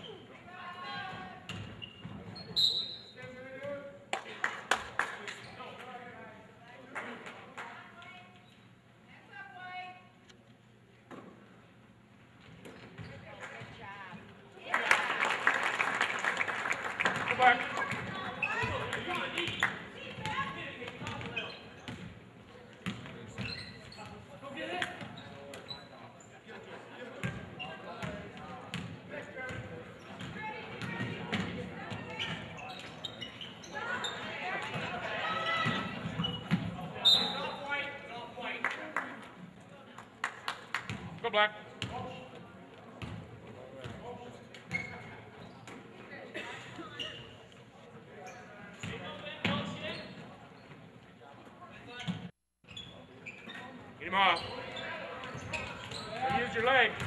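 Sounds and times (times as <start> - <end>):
voices and shouts: 33.7 - 36.0.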